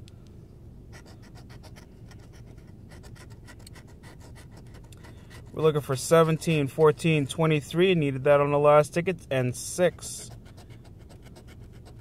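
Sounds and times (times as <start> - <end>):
scratching lottery ticket: 1.0 - 8.2, 9.6 - 12.0.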